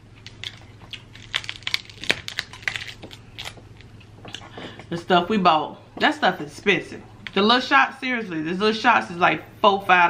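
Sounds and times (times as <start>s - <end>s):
crab shells cracking: 0.2s - 4.4s.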